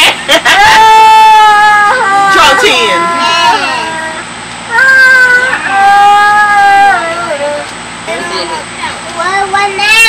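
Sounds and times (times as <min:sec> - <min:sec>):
person wailing high-pitched: 0:00.6 - 0:07.6.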